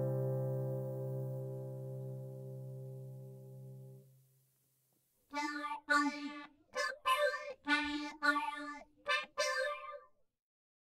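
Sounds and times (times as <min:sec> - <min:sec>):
accordion notes: 0:05.4 - 0:09.8.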